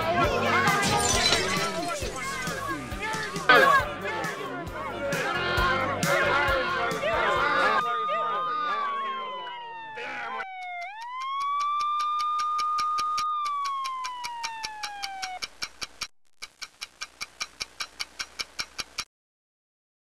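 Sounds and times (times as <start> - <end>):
sliding siren-like tone: 7.7 - 15.4
clock ticking quickly: 10.6 - 19.1.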